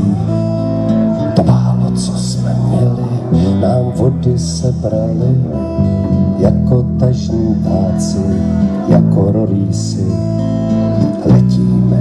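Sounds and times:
bass line: 0:00.0 - 0:12.0
folk band playing: 0:00.0 - 0:12.0
strummed acoustic guitar: 0:00.0 - 0:12.0.

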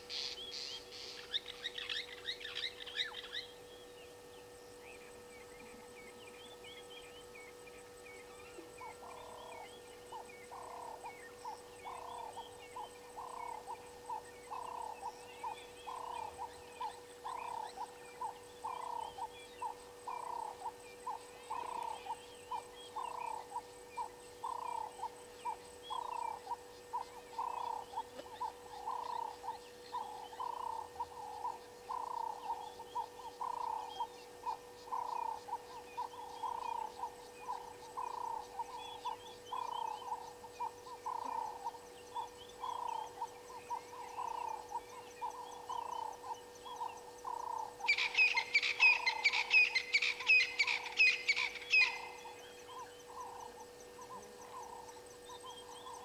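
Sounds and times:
frog croaking: 0:08.9 - 0:12.4, 0:13.2 - 0:43.3, 0:43.9 - 0:56.0.

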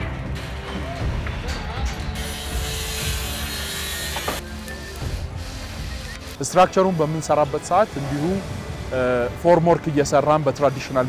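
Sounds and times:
background music: 0:00.0 - 0:11.0
harsh rasping hiss: 0:02.2 - 0:11.0.

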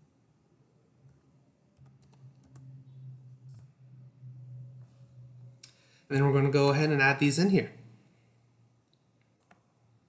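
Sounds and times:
steady low hum: 0:00.0 - 0:10.0
computer keyboard typing: 0:01.8 - 0:02.7.

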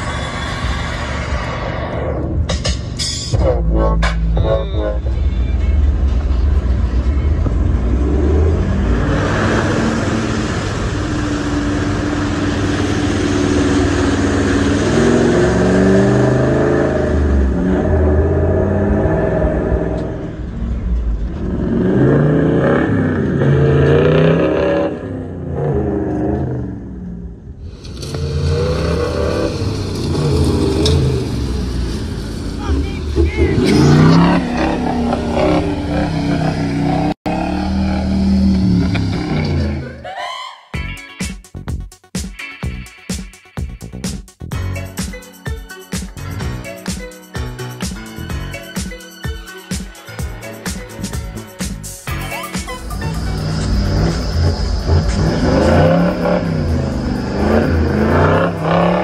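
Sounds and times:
vehicle rumble inside cab: 0:00.0 - 0:40.0, 0:50.8 - 0:59.0
engines revving: 0:03.3 - 0:40.0, 0:50.4 - 0:59.0.

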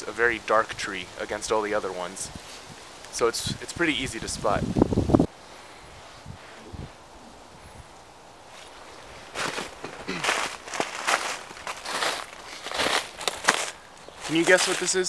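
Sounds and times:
footsteps in snow and leaves: 0:08.4 - 0:15.0.

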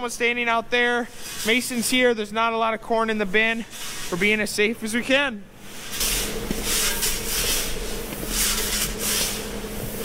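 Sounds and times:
machinery hum: 0:00.0 - 0:10.0
corn kernels hissing and sliding: 0:05.7 - 0:09.6
shovels scraping corn: 0:05.9 - 0:09.4.

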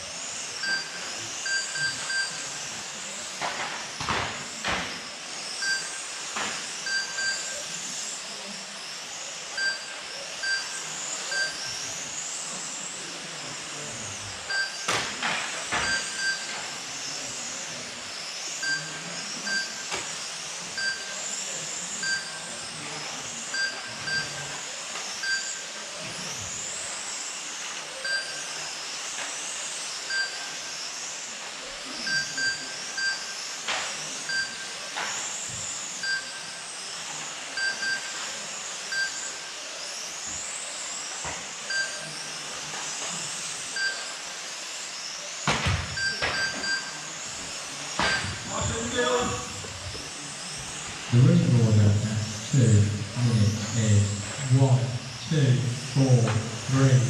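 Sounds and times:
electric motor whine: 0:00.0 - 0:57.0
short electronic beeps: 0:00.6 - 0:02.4, 0:05.6 - 0:06.0, 0:06.9 - 0:07.5, 0:15.8 - 0:16.5, 0:20.8 - 0:21.1, 0:22.0 - 0:22.4, 0:23.6 - 0:24.4, 0:25.2 - 0:25.6, 0:32.1 - 0:33.3, 0:34.2 - 0:34.7, 0:36.0 - 0:36.5, 0:37.6 - 0:38.2, 0:38.9 - 0:39.3, 0:41.7 - 0:42.0, 0:46.0 - 0:47.0, 0:48.0 - 0:49.0.

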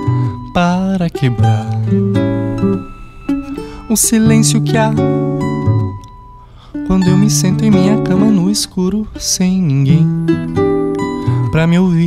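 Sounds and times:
person singing: 0:00.0 - 0:06.0, 0:06.8 - 0:12.0
acoustic guitar plucking: 0:00.0 - 0:12.0.

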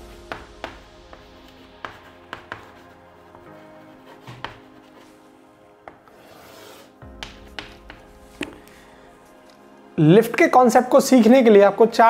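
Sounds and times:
soft background music: 0:00.0 - 0:12.0
chalk tapping and scraping: 0:00.2 - 0:05.2, 0:05.9 - 0:08.6.

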